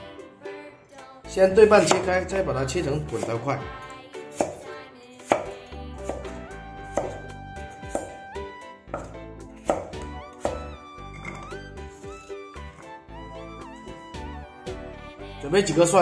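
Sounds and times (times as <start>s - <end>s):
light background music: 0.0s - 16.0s
cleaver knocking on wooden board: 9.0s - 10.6s.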